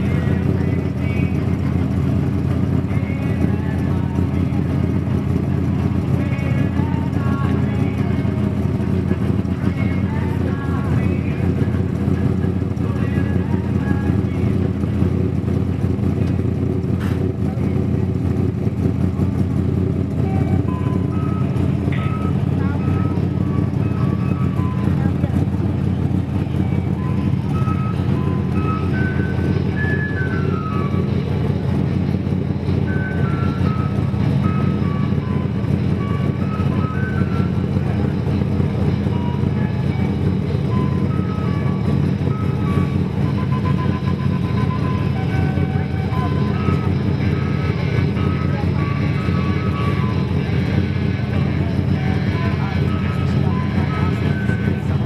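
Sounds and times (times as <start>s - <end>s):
vehicle engine running: 0.0s - 55.0s
high beeping tune: 19.4s - 55.0s.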